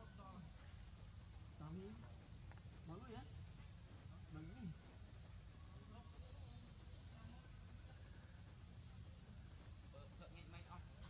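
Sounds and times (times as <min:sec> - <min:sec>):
forest insects droning: 0:00.0 - 0:11.0.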